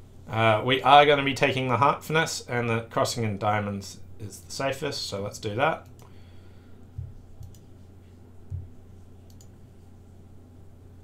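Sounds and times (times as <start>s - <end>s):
steady low hum: 0.0s - 11.0s
soft low thumps: 6.9s - 7.5s, 8.4s - 8.9s
computer mouse clicks: 7.0s - 7.7s, 8.5s - 9.6s.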